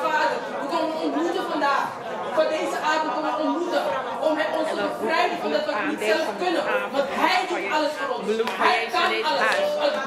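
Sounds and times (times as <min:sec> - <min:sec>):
voices praying: 0:02.3 - 0:10.0
woman praying over loudspeaker: 0:02.4 - 0:10.0.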